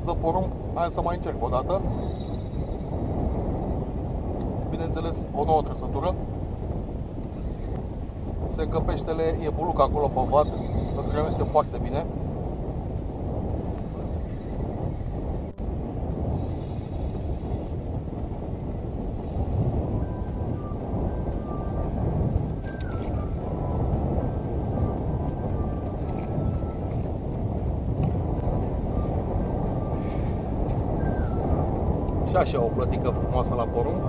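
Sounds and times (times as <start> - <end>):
wind rumble on microphone: 0.0 - 34.0.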